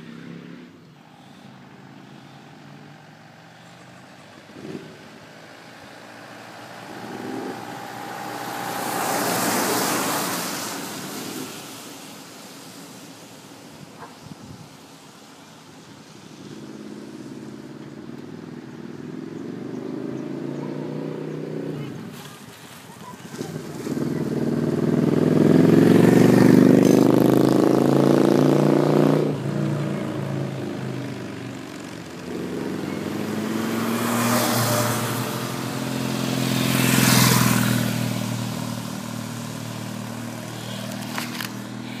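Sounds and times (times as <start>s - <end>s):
motorcycles passing: 0.0s - 42.0s.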